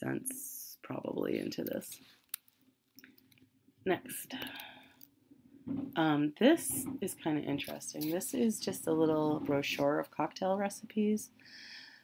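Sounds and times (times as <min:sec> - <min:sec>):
person speaking: 0:00.0 - 0:02.0, 0:06.0 - 0:11.3.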